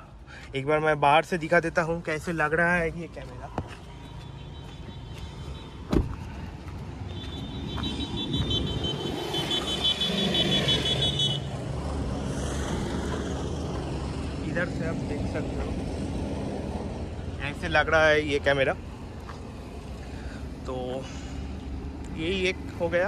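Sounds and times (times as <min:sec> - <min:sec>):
traffic rumble: 0:00.0 - 0:23.0
vehicle passing: 0:03.7 - 0:22.9
car door shutting: 0:05.9 - 0:06.2.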